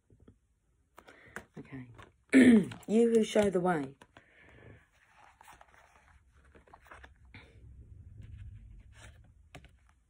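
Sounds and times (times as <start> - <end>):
card ticks and rustles: 1.0 - 7.2.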